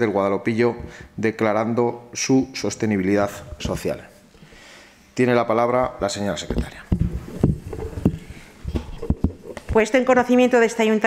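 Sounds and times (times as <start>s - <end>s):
microphone handling thumps: 6.5s - 10.0s.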